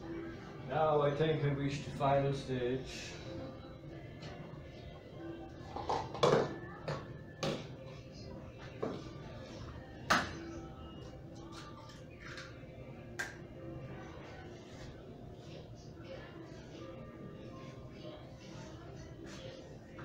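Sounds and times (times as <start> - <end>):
quiet background music: 0.0 - 20.0.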